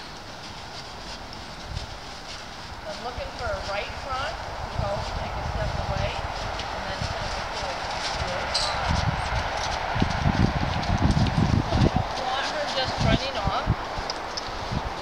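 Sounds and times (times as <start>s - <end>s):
horse hooves thudding on sand: 0.0s - 15.0s.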